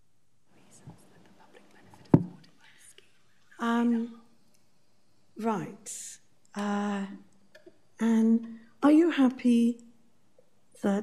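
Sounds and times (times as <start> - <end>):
person whispering into microphone: 0.5 - 4.3
soft bump: 1.9 - 2.5.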